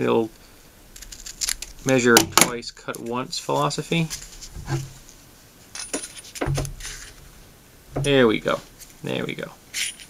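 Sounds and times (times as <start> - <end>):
tape and paper crinkling: 0.9 - 5.2, 6.0 - 7.2.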